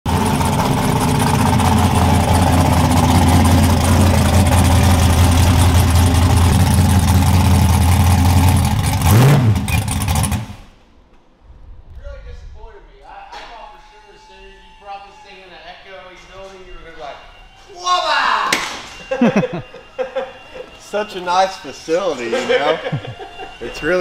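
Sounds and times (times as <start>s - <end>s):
car engine running: 0.0s - 10.7s
engine rev blip: 0.4s - 10.7s.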